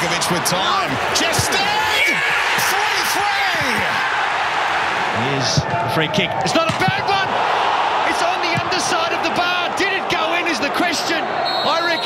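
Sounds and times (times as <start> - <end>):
stadium crowd cheering and shouting: 0.0 - 12.0.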